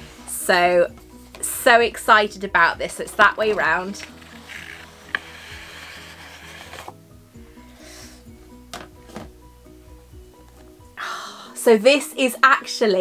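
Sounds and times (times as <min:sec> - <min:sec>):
soft background music: 0:00.0 - 0:13.0
cardboard box scraping: 0:03.5 - 0:06.9.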